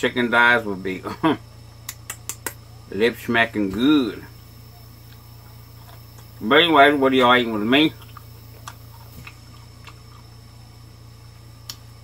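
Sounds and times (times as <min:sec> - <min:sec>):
steady low hum: 0:00.0 - 0:12.0
mouth clicks eating: 0:07.2 - 0:10.6.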